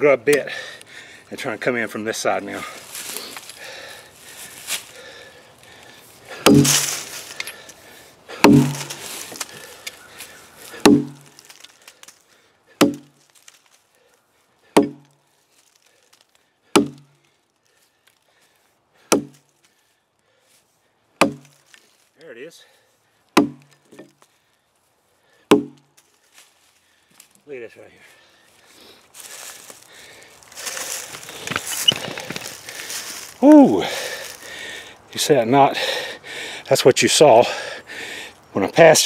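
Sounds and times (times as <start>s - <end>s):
axe chopping into log: 6.4s - 7.1s, 8.4s - 9.5s, 10.8s - 11.7s, 12.8s - 13.2s, 14.8s - 15.1s, 16.8s - 17.1s, 19.1s - 19.4s, 21.2s - 21.6s, 23.4s - 24.1s, 25.5s - 25.9s.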